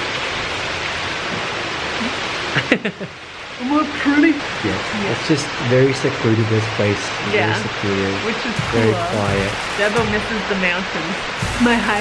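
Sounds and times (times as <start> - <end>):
person laughing: 2.5 - 10.2
steady rushing noise: 7.0 - 12.0.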